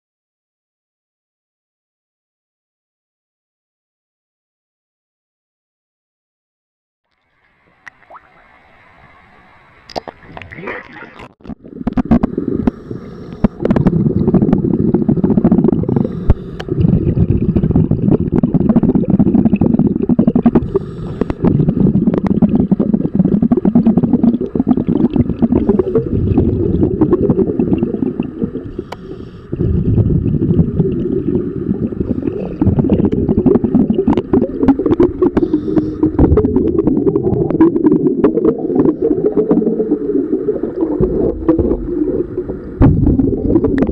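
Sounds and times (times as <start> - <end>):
underwater regulator bubbles: 9.9 - 43.9.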